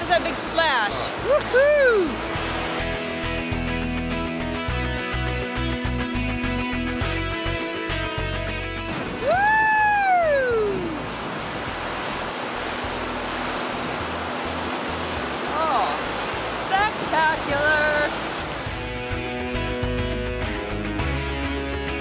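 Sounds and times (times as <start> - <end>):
ocean surf breaking on rocks: 0.0 - 4.1, 8.5 - 20.1
guitar music: 1.9 - 9.4, 11.0 - 22.0.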